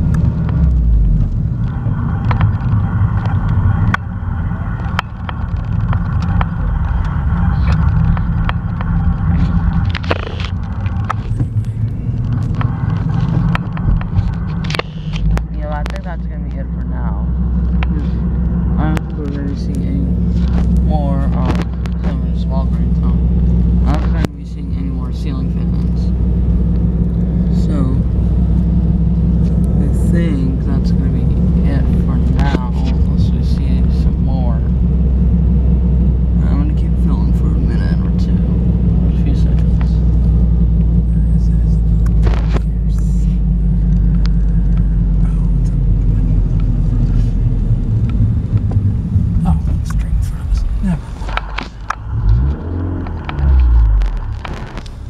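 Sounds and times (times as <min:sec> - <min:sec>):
car engine and tyres rumbling: 0:00.0 - 0:55.0.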